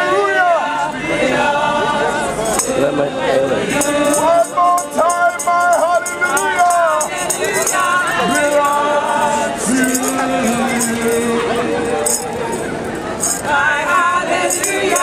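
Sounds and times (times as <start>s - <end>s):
group singing gospel song: 0.0s - 12.6s, 13.2s - 15.0s
tambourine shaken in rhythm: 2.4s - 2.8s, 3.7s - 15.0s.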